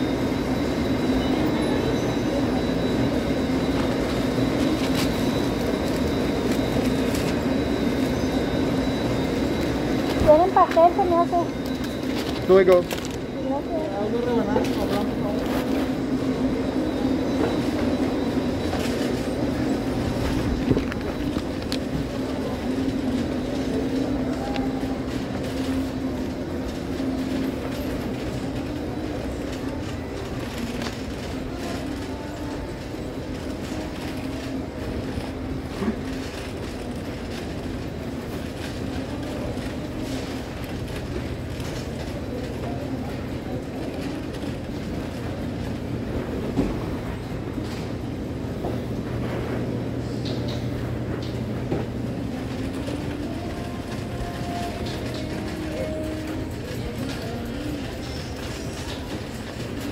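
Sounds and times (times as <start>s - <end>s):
shopping cart wheels rattling: 0.1s - 59.9s.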